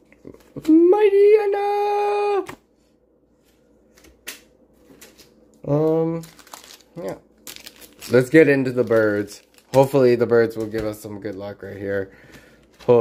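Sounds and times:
trading cards and foil packs rustling: 0:04.8 - 0:13.0.

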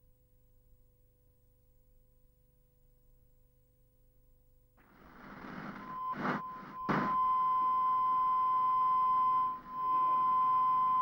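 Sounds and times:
short crackles: 0:04.8 - 0:07.2
static hiss: 0:04.8 - 0:07.2
steady test tone beep: 0:05.5 - 0:11.0.

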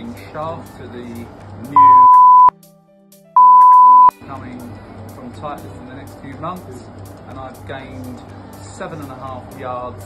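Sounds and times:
censor bleep: 0:01.8 - 0:02.5, 0:03.4 - 0:04.1.

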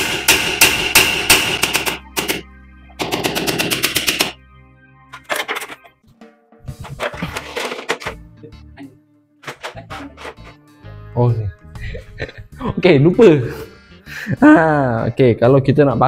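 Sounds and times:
hammer striking nails: 0:00.0 - 0:02.4, 0:03.0 - 0:04.4.

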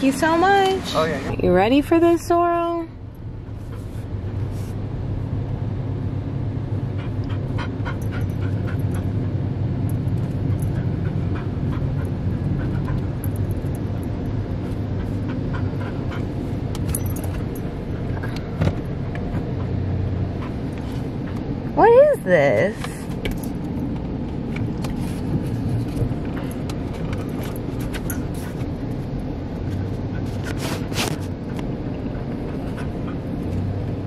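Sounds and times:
car cabin hum: 0:00.0 - 0:34.0
dog panting: 0:06.9 - 0:09.4, 0:10.0 - 0:13.6, 0:14.6 - 0:18.4, 0:19.2 - 0:21.6, 0:31.8 - 0:34.0.

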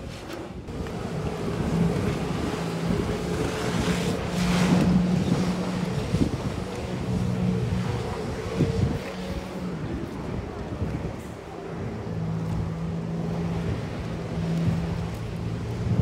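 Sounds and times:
jet ski engine drone: 0:00.0 - 0:16.0
wind on microphone: 0:00.0 - 0:16.0.

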